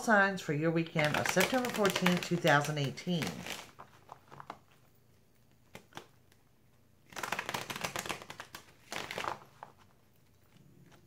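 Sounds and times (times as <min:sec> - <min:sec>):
cards being shuffled: 0:01.0 - 0:06.4, 0:07.0 - 0:11.0.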